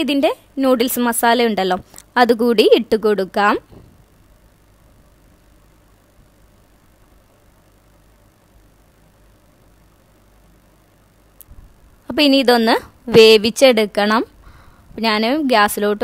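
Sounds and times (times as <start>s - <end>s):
faint room hiss: 0.0s - 16.0s.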